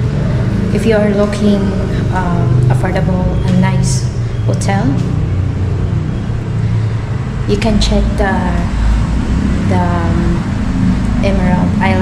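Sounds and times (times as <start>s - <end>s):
held low tones: 0.0s - 12.0s
low mechanical hum: 0.0s - 12.0s.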